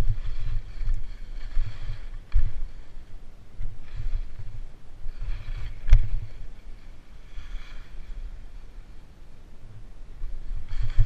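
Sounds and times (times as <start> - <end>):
skis scraping over snow: 0.0 - 9.2, 10.2 - 11.0
wind buffeting microphone: 0.0 - 11.0.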